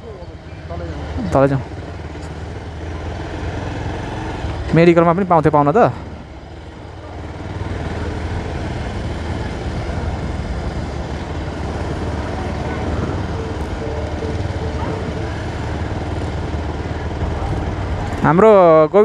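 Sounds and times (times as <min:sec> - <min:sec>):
motorcycles: 0:00.0 - 0:19.0
traffic rumble: 0:00.0 - 0:19.0
faint voices: 0:11.7 - 0:18.4.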